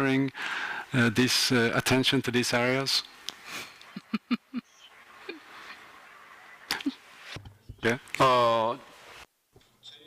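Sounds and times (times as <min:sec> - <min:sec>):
man laughing: 0:03.8 - 0:05.5.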